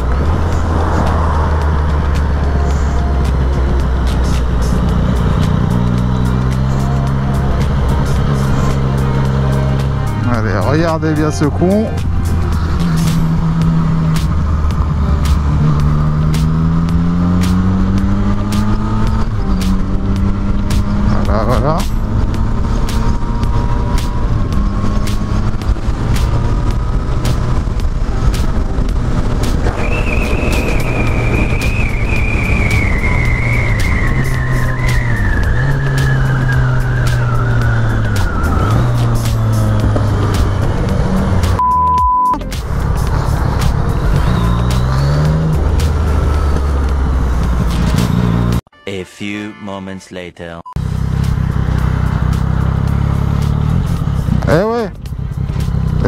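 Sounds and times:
wind rush: 0.0s - 5.9s, 22.0s - 41.6s
motorcycle engine accelerating: 0.0s - 41.7s, 42.4s - 48.7s, 50.8s - 56.0s
high tone sliding downward: 0.0s - 48.6s
short steady beep: 41.6s - 42.4s.

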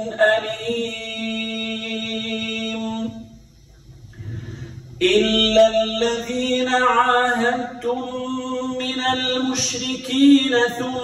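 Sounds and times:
chanted recitation: 0.0s - 3.3s, 5.0s - 11.0s
low background rumble: 0.0s - 11.0s
soft breath drawn: 4.1s - 5.0s.

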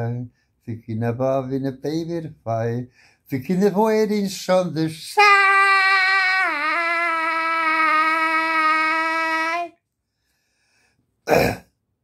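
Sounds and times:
man singing a long high note: 5.0s - 9.8s.

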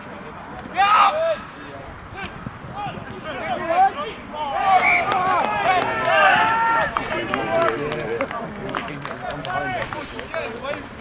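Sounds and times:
people shouting and calling out: 0.6s - 10.9s.

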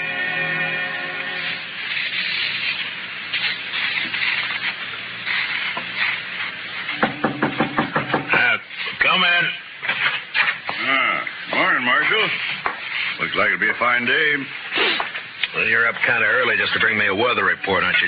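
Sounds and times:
noisy background: 0.0s - 18.0s.

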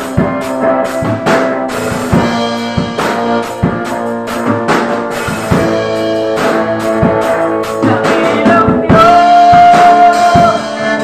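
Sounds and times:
drum kit: 0.0s - 11.0s
electric guitar chords: 0.0s - 11.0s.

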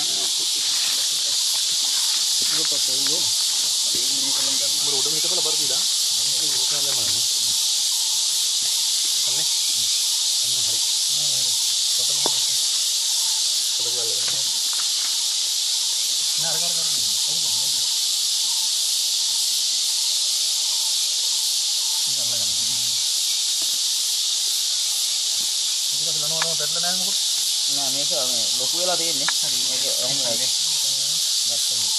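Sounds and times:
men's voices murmuring: 0.0s - 7.5s, 28.0s - 31.9s
insect chorus drone: 0.0s - 31.9s.

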